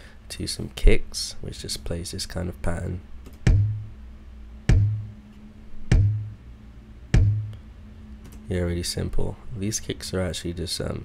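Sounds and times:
kick drum thumps: 3.4s - 3.9s, 4.7s - 5.2s, 5.9s - 6.4s, 7.1s - 7.5s.

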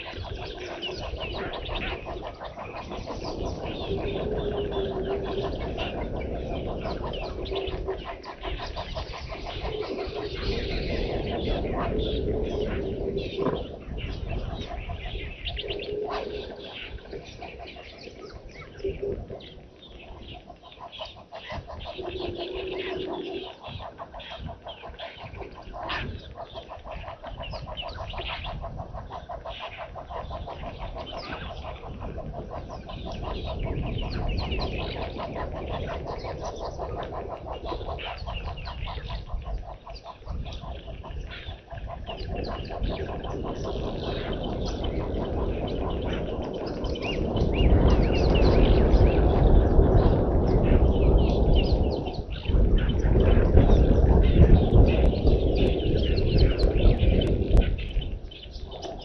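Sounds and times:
birds chirping: 0.0s - 59.0s.

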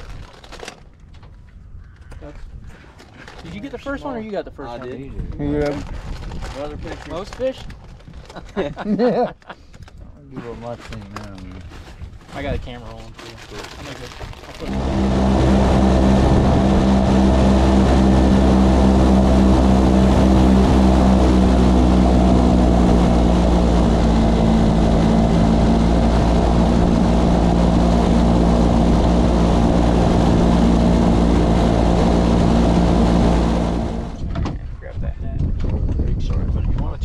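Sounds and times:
boat engine droning: 14.6s - 34.3s.

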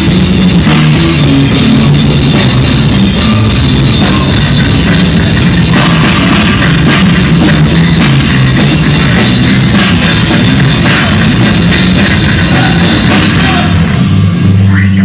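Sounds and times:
heavy metal band playing live: 0.0s - 15.0s.

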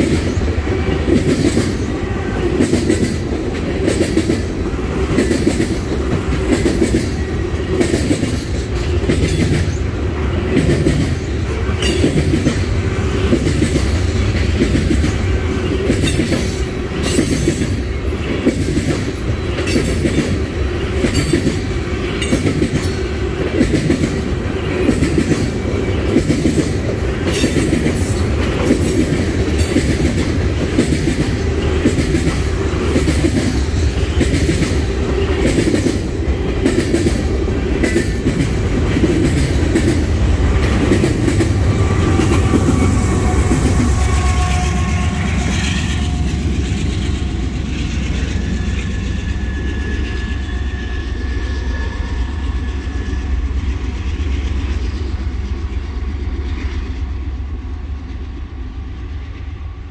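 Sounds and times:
train wheels clacking over track: 0.0s - 58.6s.

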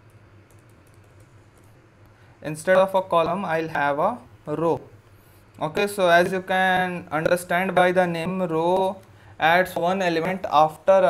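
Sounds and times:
computer keyboard key clicks: 0.0s - 1.7s.

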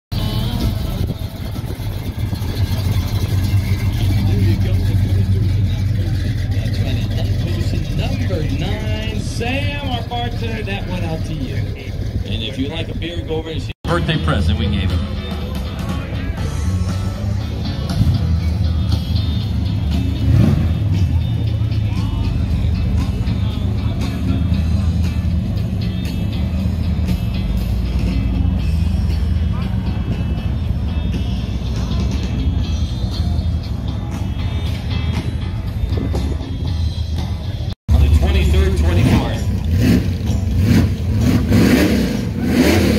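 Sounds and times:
music: 0.1s - 42.9s
car engine rumbling past: 0.2s - 42.9s.

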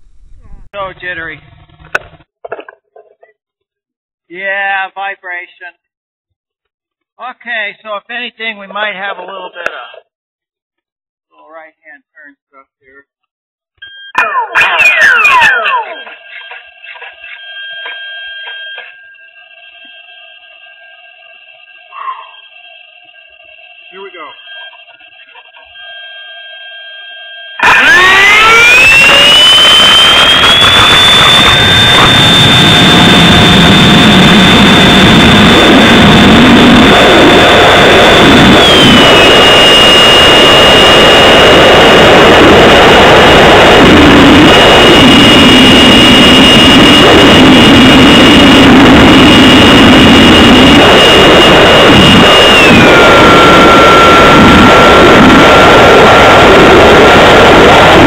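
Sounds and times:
model airplane motor whine: 22.4s - 41.3s.

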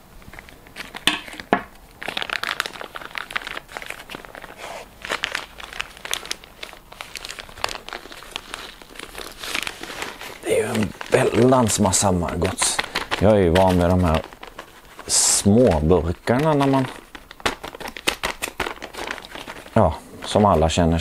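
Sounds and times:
plastic bag crinkling: 0.2s - 21.0s.

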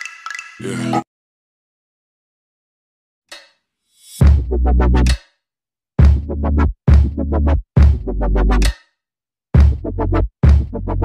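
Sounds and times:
electronic dance track: 4.2s - 5.2s, 6.0s - 8.7s, 9.6s - 11.0s.

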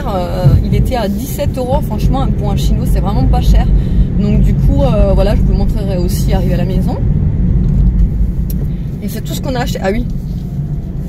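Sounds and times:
car driving rumble inside cabin: 0.0s - 11.0s.

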